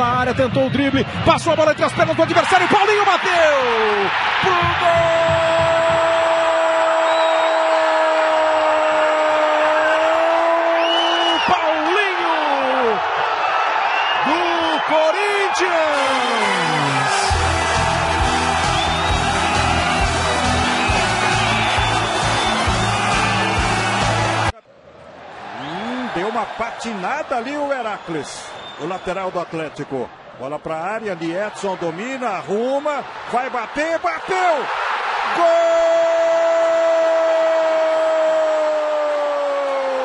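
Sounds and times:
stadium crowd noise: 0.0 - 40.0
commentator shouting goal: 0.1 - 7.0, 14.3 - 17.6, 31.1 - 34.7
music with steady beat: 17.3 - 24.5.

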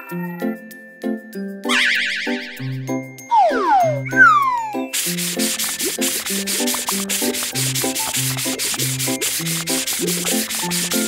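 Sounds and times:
upbeat children's music: 0.0 - 11.0
cartoon rasping scrub: 4.9 - 11.0.

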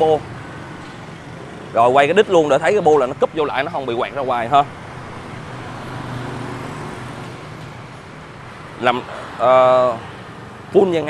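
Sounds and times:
street traffic engine hum: 0.0 - 11.0.

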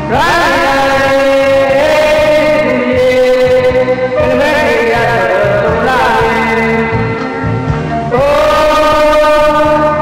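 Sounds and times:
person singing wavering notes: 0.0 - 10.0.

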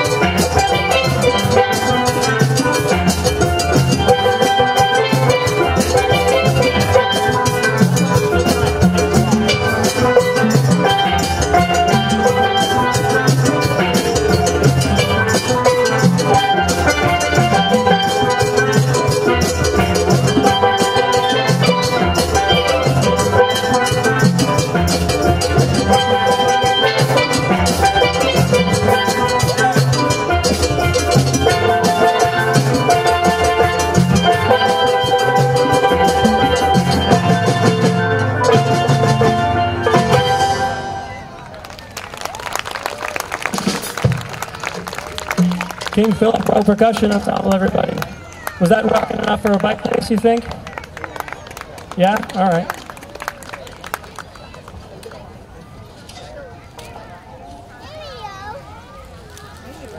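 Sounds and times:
steel pans playing melody: 0.0 - 58.1
drums keeping a steady beat: 0.0 - 59.9.

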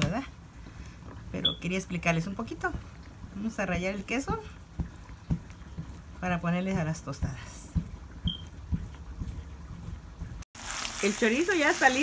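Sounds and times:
sausage sizzling in a frying pan: 10.5 - 12.0.

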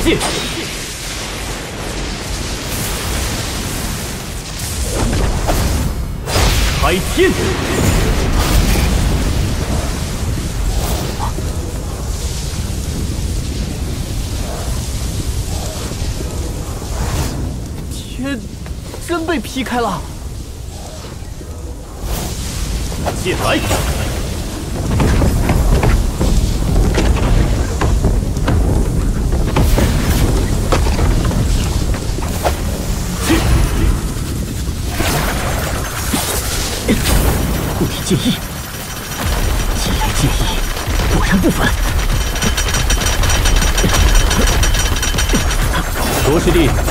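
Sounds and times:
deep rumble with booms: 0.8 - 19.1, 20.0 - 46.9.

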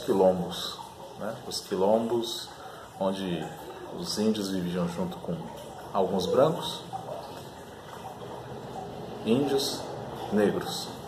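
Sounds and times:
room background noise: 0.0 - 11.0.

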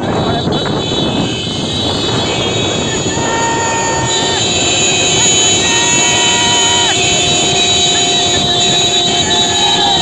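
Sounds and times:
motorcycle engines: 0.0 - 10.0.

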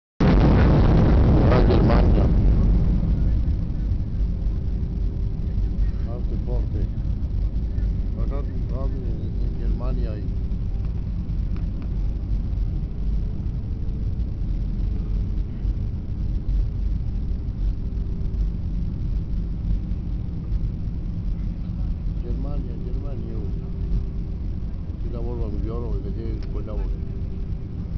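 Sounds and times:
faint steady hum: 0.2 - 27.9
jet engine and airflow rumble: 0.2 - 27.9
faint voices: 1.2 - 27.9.

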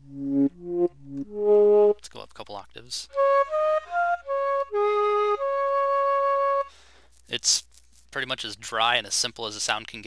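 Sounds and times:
flute melody: 0.0 - 2.0, 3.1 - 6.8.

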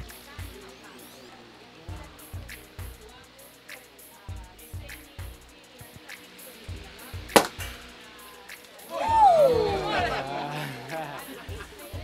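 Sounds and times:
champagne cork popping: 7.3 - 7.8.

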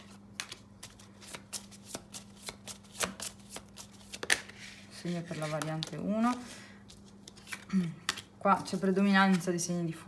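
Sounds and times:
cards being shuffled: 0.0 - 9.7.

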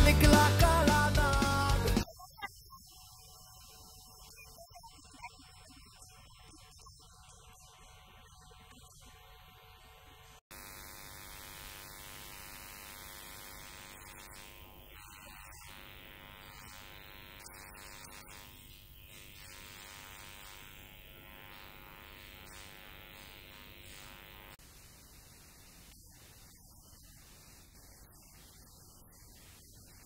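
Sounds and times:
electrical mains hum: 7.1 - 30.0
hiss: 24.6 - 30.0.

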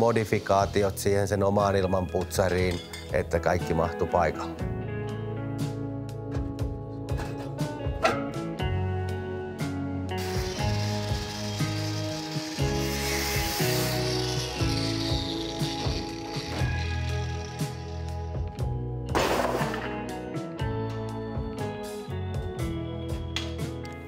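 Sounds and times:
background music with bass line: 4.4 - 24.0
angle grinder cutting steel: 10.2 - 18.6.

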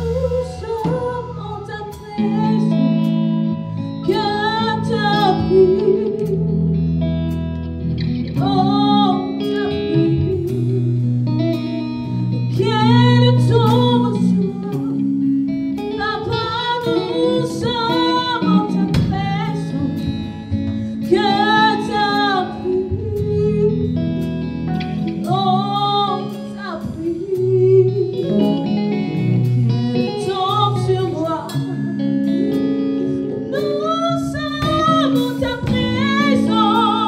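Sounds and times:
guitar: 0.0 - 37.0
women singing gospel song: 21.1 - 23.4, 33.0 - 37.0.

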